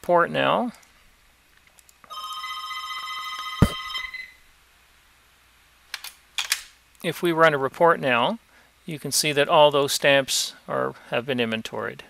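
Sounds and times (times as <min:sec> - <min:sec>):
electronic ringing tone: 0:02.1 - 0:04.3.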